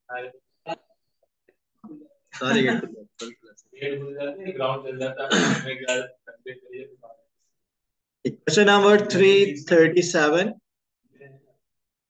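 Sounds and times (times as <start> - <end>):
low indistinct speech: 0.1 - 0.4, 1.8 - 7.2
man clearing his throat: 5.0 - 6.0.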